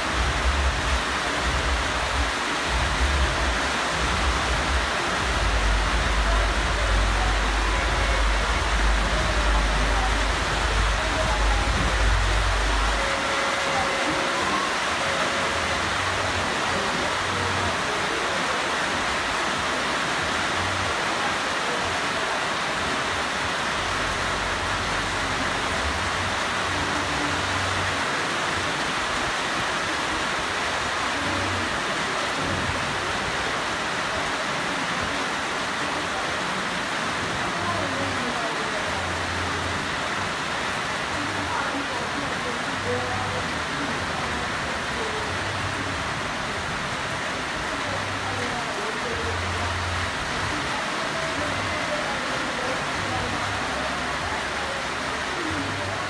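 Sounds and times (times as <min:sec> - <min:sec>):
heavy rain falling: 0:00.0 - 0:56.0.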